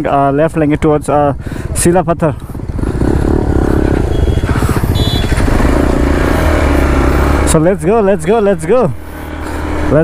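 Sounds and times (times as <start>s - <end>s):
motorcycle engine revving: 2.4s - 10.0s.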